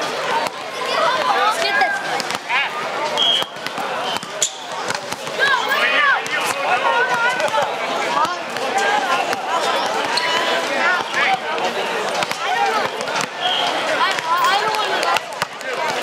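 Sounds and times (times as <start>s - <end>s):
chatter and calls: 0.0s - 16.0s
hands slapping volleyball: 14.1s - 16.0s.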